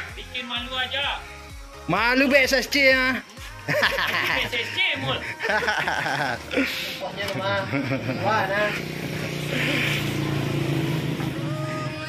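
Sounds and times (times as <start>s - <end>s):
people talking and laughing: 2.7s - 10.6s.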